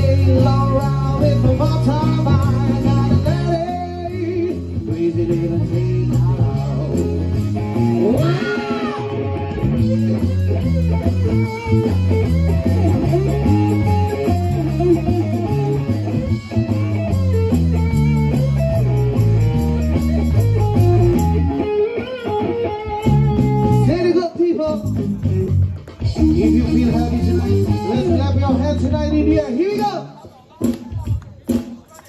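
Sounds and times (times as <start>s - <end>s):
bass line: 0.0s - 21.8s, 22.8s - 29.6s
electric guitar: 0.0s - 29.9s.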